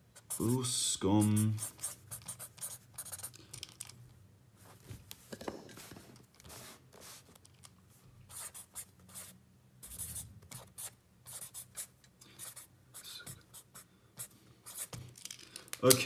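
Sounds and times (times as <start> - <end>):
pen writing on paper: 1.3 - 3.3, 8.3 - 15.0.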